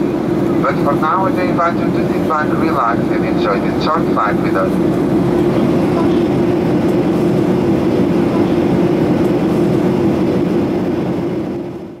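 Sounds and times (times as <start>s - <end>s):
airplane cabin jet engine drone: 0.0s - 12.0s.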